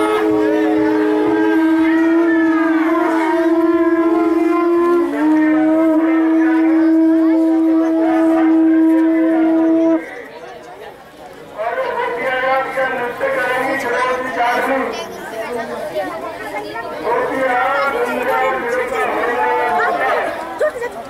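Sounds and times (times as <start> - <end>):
conch shell blown: 0.0 - 10.3
higher conch note: 0.0 - 10.3.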